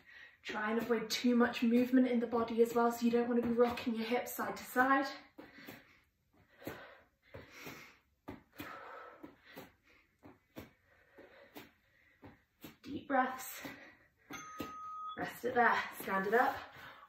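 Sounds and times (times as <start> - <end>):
hands tapping shoulders and mat: 0.6 - 16.5
woman breathing faintly: 5.3 - 12.7.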